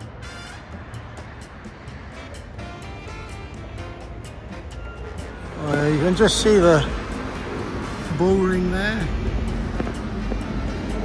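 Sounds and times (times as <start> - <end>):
city street traffic rumble: 0.0 - 11.0.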